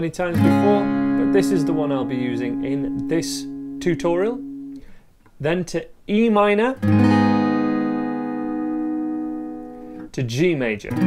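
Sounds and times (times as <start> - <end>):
acoustic guitar chord ringing: 0.3 - 5.0, 6.8 - 10.1.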